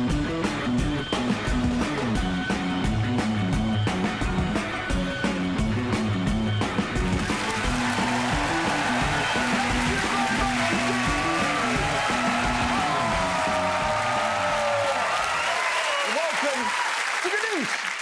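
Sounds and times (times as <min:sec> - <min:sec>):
upbeat theme music: 0:00.0 - 0:16.7
audience applauding and cheering: 0:07.2 - 0:18.0.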